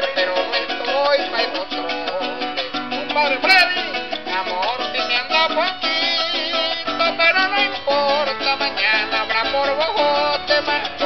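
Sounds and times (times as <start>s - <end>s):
harp and cuatro plucked music: 0.0s - 11.0s.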